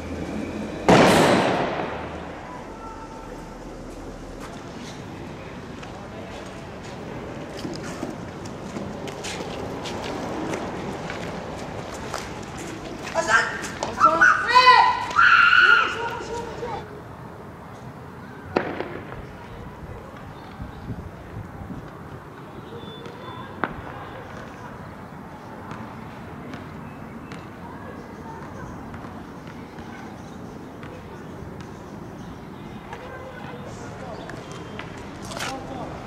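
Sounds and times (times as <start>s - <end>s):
loud echoing blast: 0.8s - 2.7s.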